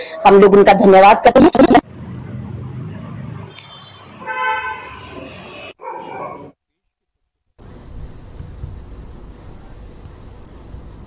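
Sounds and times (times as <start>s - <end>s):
street noise: 0.0s - 6.6s
vehicle horn tooting: 3.5s - 5.3s.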